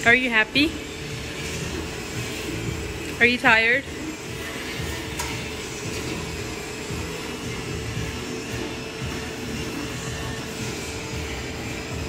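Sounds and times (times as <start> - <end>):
machinery hum: 0.0 - 12.0.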